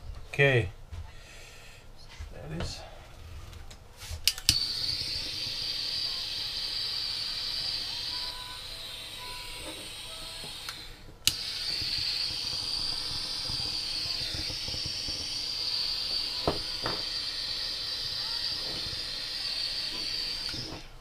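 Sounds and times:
gas torch hissing: 0:04.0 - 0:21.0
gas torch clicking: 0:04.2 - 0:21.0.

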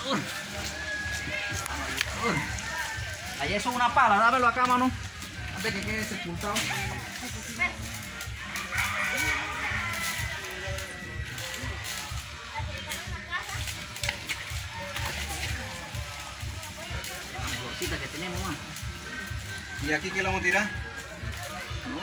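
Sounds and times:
muddy water sloshing: 0:00.0 - 0:19.8
background music: 0:00.0 - 0:22.0
voices: 0:00.0 - 0:22.0.

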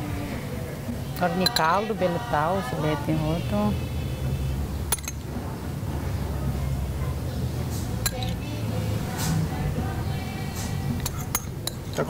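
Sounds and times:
metal spoon clinking on ceramic: 0:01.4 - 0:01.8, 0:04.9 - 0:05.2, 0:08.0 - 0:08.4, 0:11.0 - 0:12.0.

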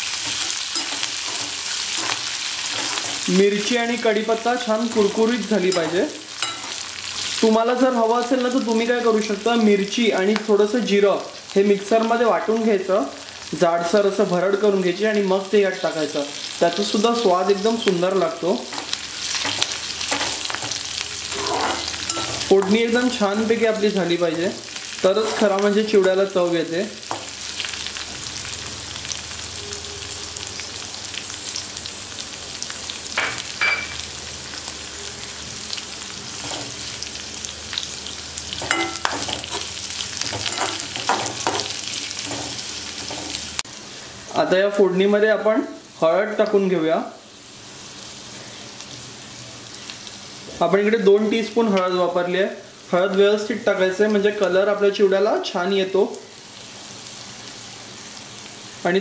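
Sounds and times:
metal spatula scraping pan: 0:00.0 - 0:03.3, 0:18.7 - 0:22.8, 0:25.2 - 0:25.5, 0:38.6 - 0:43.4
spices sizzling in hot oil: 0:00.0 - 0:59.0.

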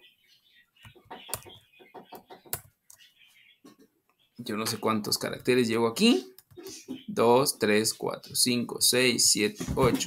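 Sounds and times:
computer keyboard typing: 0:02.5 - 0:03.0.

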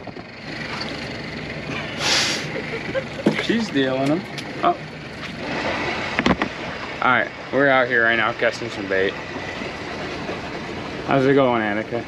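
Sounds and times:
short hiss: 0:02.0 - 0:02.5.

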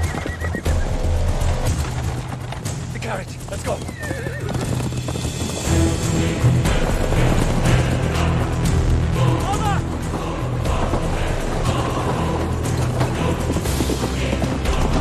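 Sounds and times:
dramatic orchestral score: 0:00.0 - 0:15.0
galloping horse hoofbeats: 0:00.0 - 0:15.0
man shouting: 0:09.4 - 0:09.8.

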